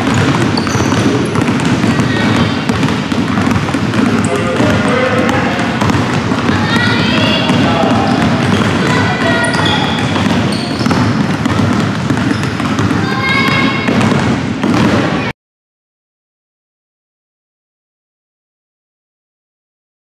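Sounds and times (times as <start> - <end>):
basketballs dribbled on wooden floor: 0.0 - 15.3
girls chattering: 1.8 - 2.7, 6.3 - 10.9, 12.9 - 13.9.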